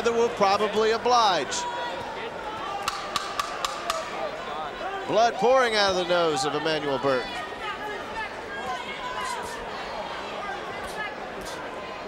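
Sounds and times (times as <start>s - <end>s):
wooden clapper knocking: 2.9s - 4.1s.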